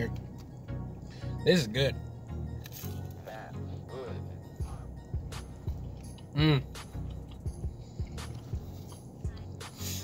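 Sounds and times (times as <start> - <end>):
music with pulsing bass: 0.0 - 10.0
chewing crispy food: 4.7 - 10.0.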